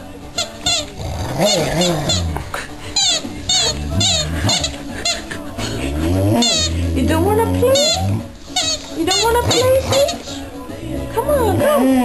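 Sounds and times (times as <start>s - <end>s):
dog whining and grumbling: 0.9s - 2.4s, 3.5s - 4.8s, 5.6s - 10.2s.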